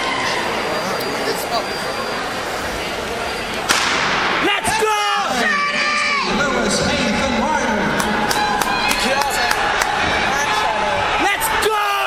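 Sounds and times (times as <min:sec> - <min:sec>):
spectators shouting and cheering: 0:00.0 - 0:12.0
starting gun crack with echo: 0:03.6 - 0:04.5.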